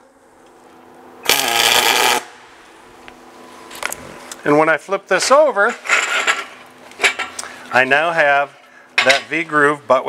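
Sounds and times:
welding arc: 1.2 - 2.6.

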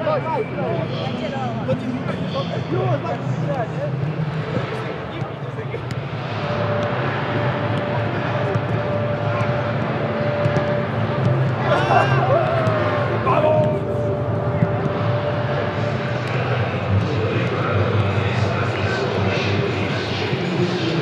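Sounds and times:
low crowd rumble with voices: 0.0 - 21.0
balls being kicked: 10.3 - 11.7.

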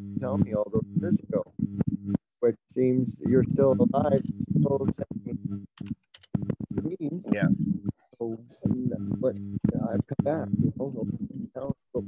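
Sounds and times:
man speaking over video call: 0.2 - 1.4, 2.4 - 5.4, 6.8 - 7.5, 8.2 - 12.0.

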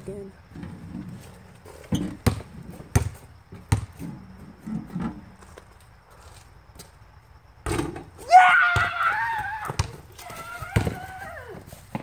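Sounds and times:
basketball bouncing: 2.0 - 4.0, 9.6 - 11.2.

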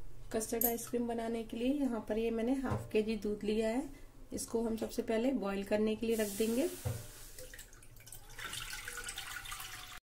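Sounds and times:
milk pouring into a pan: 6.2 - 10.0.

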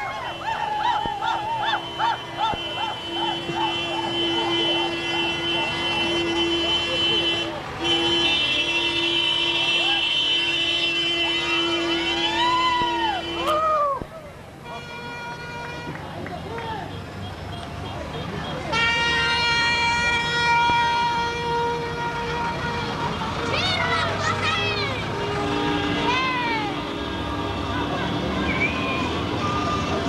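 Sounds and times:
rising and falling whoops: 0.0 - 3.0
vehicle horn blast: 1.4 - 13.6, 14.6 - 16.1, 18.7 - 23.3.

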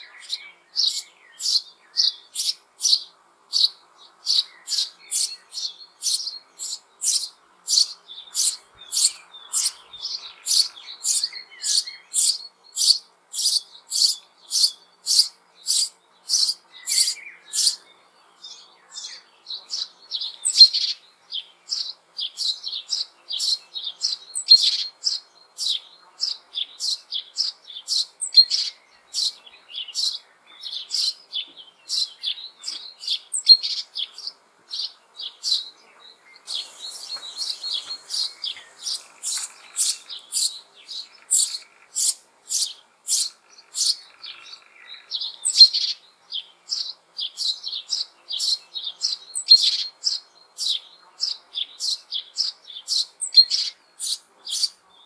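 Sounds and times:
chicks chirping: 3.6 - 17.8, 36.4 - 46.0, 46.7 - 54.7.

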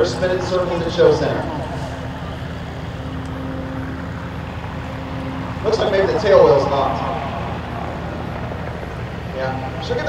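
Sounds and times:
aircraft piston engine idling: 0.0 - 10.0.

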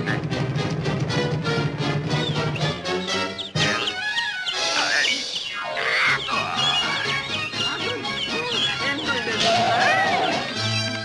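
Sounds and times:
orchestral cartoon music: 0.0 - 11.0.

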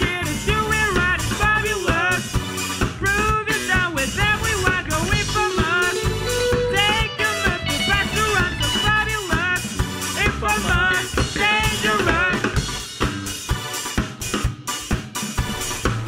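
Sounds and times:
person singing: 0.0 - 2.4, 3.0 - 12.6
electric guitar: 0.0 - 13.7
bass guitar: 0.0 - 16.0
drum kit beat: 0.0 - 16.0
keyboard: 0.0 - 16.0.

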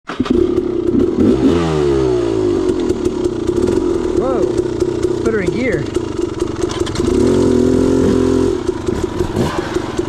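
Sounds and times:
dirt bike engine idling and revving: 0.0 - 10.0.

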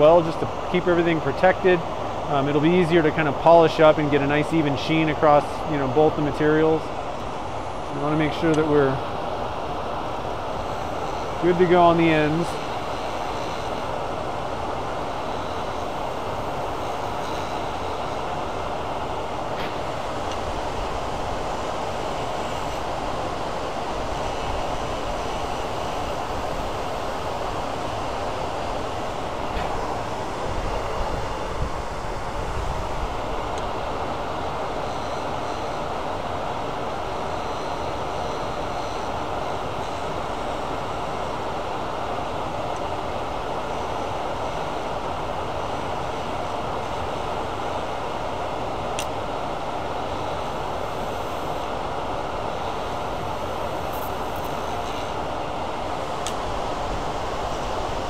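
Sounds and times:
dust collection hood: 0.0 - 37.4
lathe running: 3.4 - 36.1.

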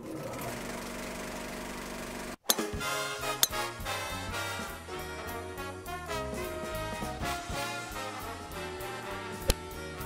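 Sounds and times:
film projector whirring: 0.0 - 2.4
music: 2.4 - 10.0.

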